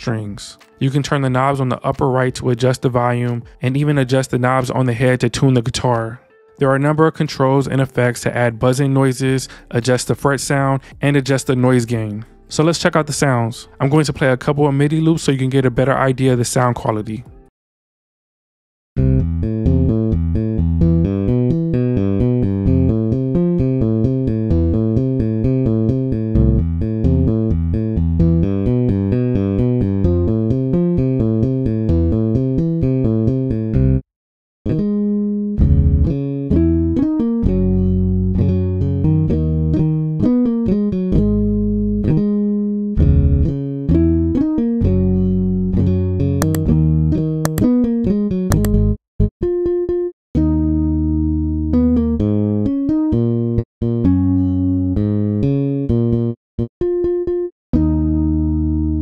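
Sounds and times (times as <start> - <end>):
bass guitar riff: 19.0 - 34.0, 34.7 - 59.0
slow bass line: 19.0 - 34.0, 34.7 - 49.8, 50.4 - 59.0.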